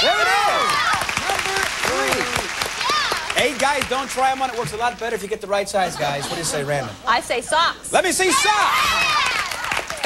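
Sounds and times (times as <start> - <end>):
audience applauding: 0.0 - 5.3, 8.9 - 10.0.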